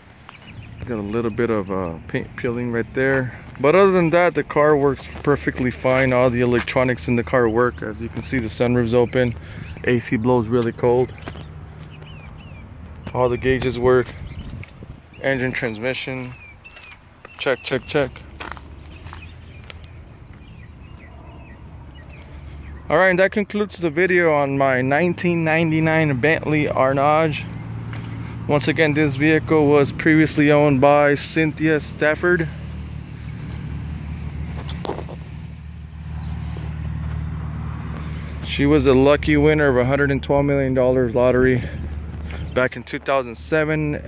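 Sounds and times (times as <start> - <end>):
car engine idling: 0.0 - 44.0
footsteps on pavement: 0.1 - 1.7, 2.4 - 22.9, 25.2 - 29.2, 32.6 - 44.0.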